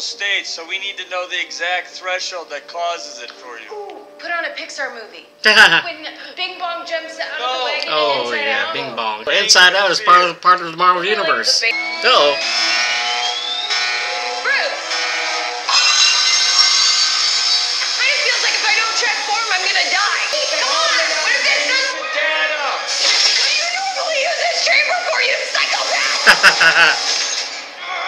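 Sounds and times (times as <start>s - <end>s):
steady electronic drone: 11.6s - 21.9s
thin whine rising in pitch: 11.7s - 14.4s.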